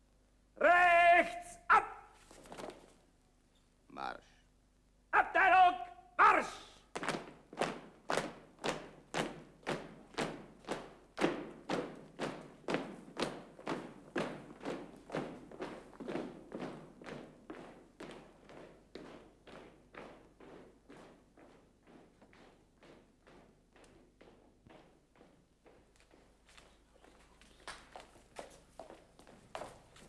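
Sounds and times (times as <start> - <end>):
men marching in step: 1.7 - 3.1, 6.2 - 30.0.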